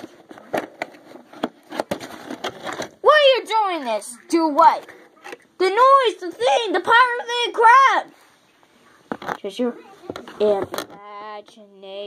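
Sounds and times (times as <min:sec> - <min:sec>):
plastic toys clicking and knocking: 0:00.0 - 0:03.1, 0:03.8 - 0:05.6, 0:09.1 - 0:11.6.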